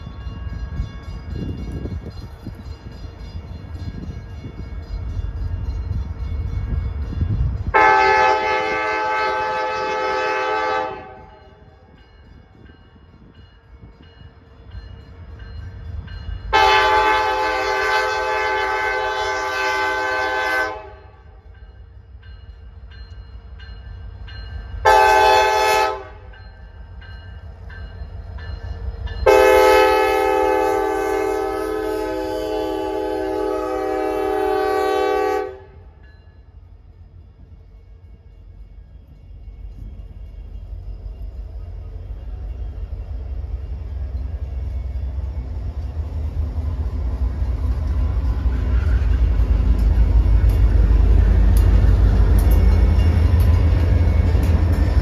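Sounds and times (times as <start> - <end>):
locomotive engines rumbling: 0.0 - 55.0
locomotive air horn: 7.7 - 11.4, 16.5 - 21.3, 24.8 - 26.2, 29.2 - 36.0.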